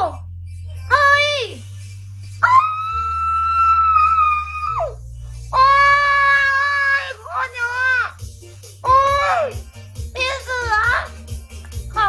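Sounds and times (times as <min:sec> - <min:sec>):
background music with bass: 0:00.0 - 0:12.0
woman squealing excitedly: 0:02.4 - 0:05.0.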